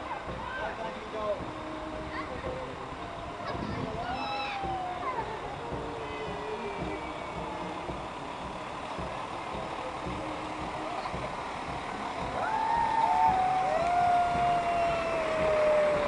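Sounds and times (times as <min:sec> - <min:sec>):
diesel lorry engine running: 0:00.0 - 0:16.0
people talking: 0:00.0 - 0:16.0.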